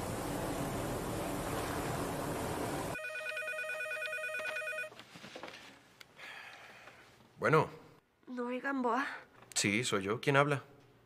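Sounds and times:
propeller plane engine: 0.0s - 3.0s
telephone ringing with warbling trill: 3.0s - 4.9s.

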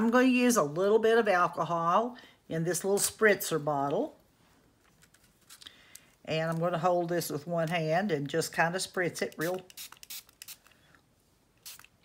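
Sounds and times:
spray bottle hissing spritzes: 11.6s - 12.0s.

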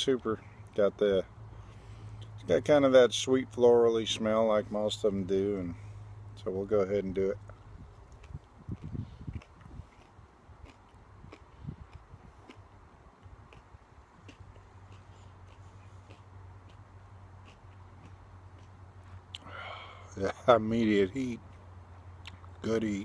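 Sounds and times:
steady low hum: 0.0s - 23.0s
man chewing: 7.5s - 19.6s, 21.4s - 22.6s.

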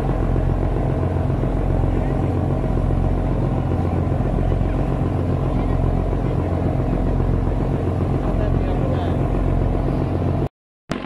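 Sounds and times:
boat engine humming: 0.0s - 11.0s
engine rumble: 0.0s - 11.0s.

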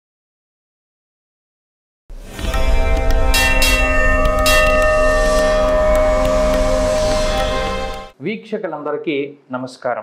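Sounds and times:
bells ringing: 2.4s - 8.1s.

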